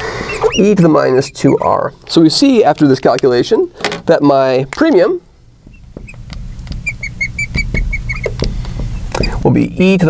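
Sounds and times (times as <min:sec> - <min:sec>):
marker squeaking on glass: 0:00.0 - 0:01.9, 0:05.6 - 0:09.5.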